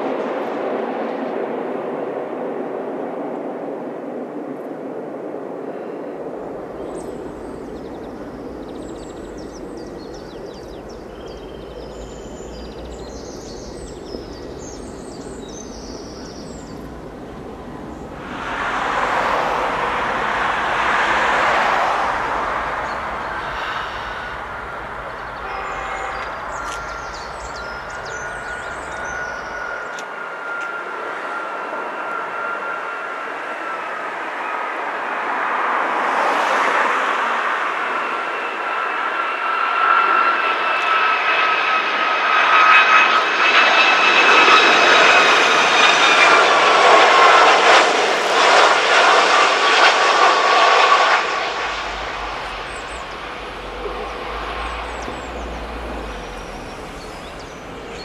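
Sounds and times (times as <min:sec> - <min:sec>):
jet engines whining: 0:00.0 - 0:58.0
rushing noise: 0:13.7 - 0:39.2, 0:44.7 - 0:58.0.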